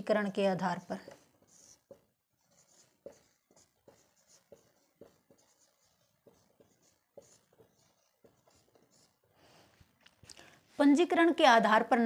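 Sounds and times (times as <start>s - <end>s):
marker scratching on whiteboard: 0.5s - 9.9s
marker tapping on whiteboard: 1.0s - 9.1s.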